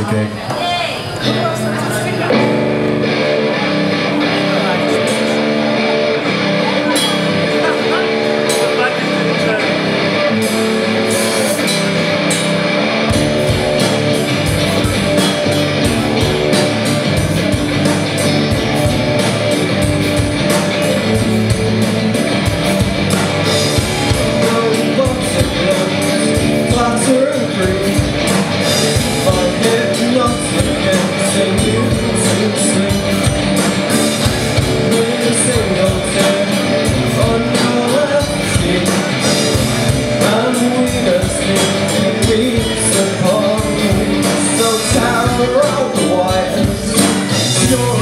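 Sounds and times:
live rock band instrumental: 0:00.0 - 0:48.0.

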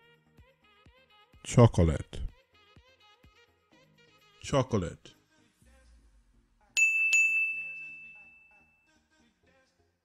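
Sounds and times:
faint background music: 0:00.0 - 0:10.0
notification bell dings: 0:06.8 - 0:08.8.

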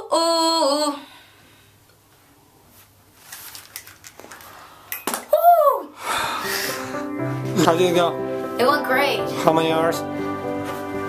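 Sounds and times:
headphones rustling and clicking: 0:02.1 - 0:05.4
person whooping: 0:05.3 - 0:06.8
music: 0:06.2 - 0:11.0.

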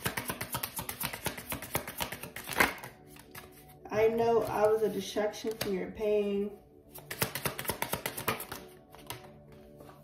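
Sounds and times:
cards being shuffled: 0:00.0 - 0:03.8, 0:06.9 - 0:10.0.

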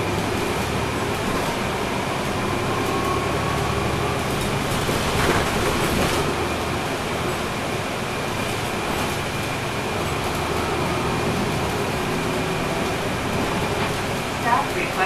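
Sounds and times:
bus diesel engine running: 0:00.0 - 0:15.0
road and tyre noise: 0:00.0 - 0:15.0.

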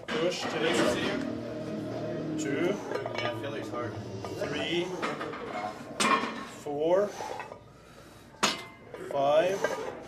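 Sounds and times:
weight plates clanking: 0:00.0 - 0:06.6.

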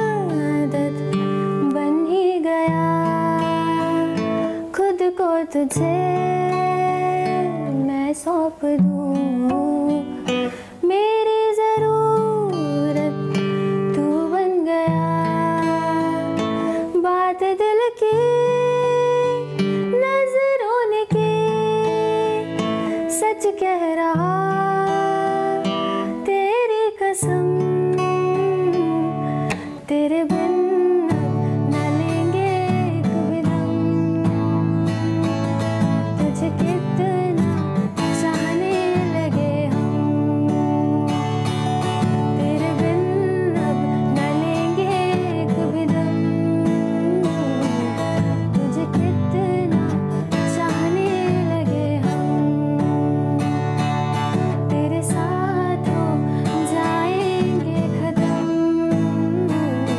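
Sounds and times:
acoustic guitar: 0:00.0 - 0:59.9
woman singing: 0:00.0 - 0:59.9.

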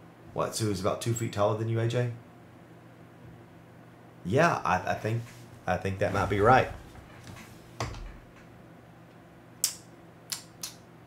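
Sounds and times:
short sharp clicks: 0:09.6 - 0:10.8.

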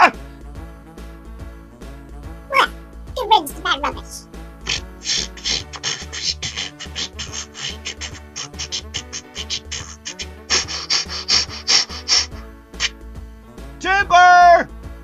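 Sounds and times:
background music: 0:00.0 - 0:15.0
saw cutting through tree trunk: 0:04.7 - 0:13.0.

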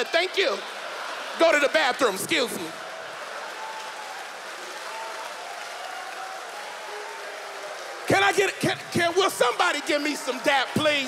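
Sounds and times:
congregation applauding: 0:00.0 - 0:11.0.

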